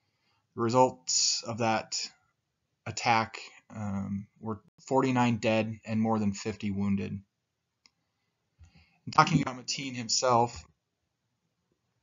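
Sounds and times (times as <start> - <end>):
man speaking: 0.6 - 2.1, 2.9 - 7.2, 9.1 - 10.6.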